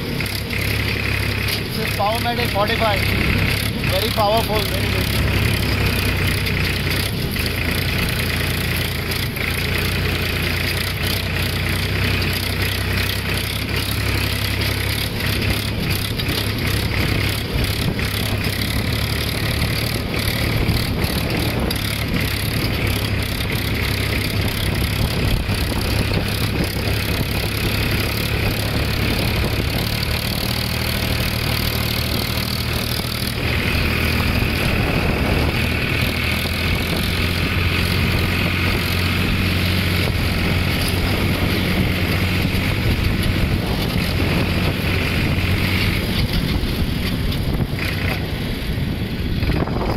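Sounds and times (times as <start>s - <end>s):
tractor diesel engine running: 0.0s - 49.9s.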